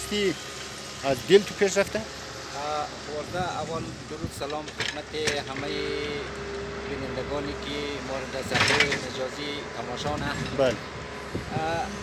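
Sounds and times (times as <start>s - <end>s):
man speaking: 1.0s - 6.3s, 6.9s - 10.8s, 11.5s - 12.0s.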